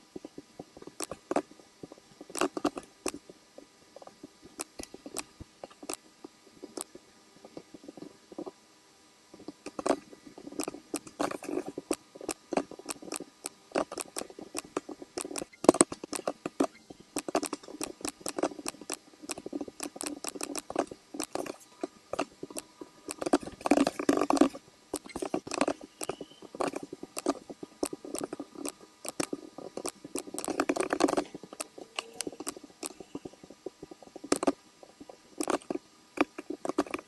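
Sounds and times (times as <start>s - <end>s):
computer mouse clicks: 0.2s - 3.3s, 4.0s - 7.0s, 9.4s - 37.0s.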